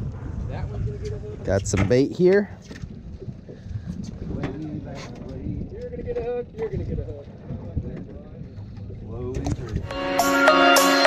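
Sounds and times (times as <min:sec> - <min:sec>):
wind rumble: 0:00.0 - 0:10.2
water noise: 0:00.0 - 0:11.0.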